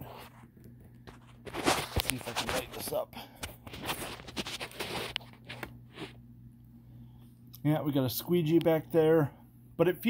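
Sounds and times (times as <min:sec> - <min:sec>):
rustling and scraping handling: 0:00.0 - 0:06.3
faint low hum: 0:00.0 - 0:10.0.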